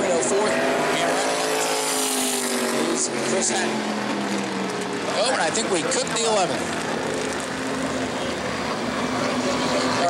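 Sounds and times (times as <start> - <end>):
car engines droning: 0.0 - 10.0.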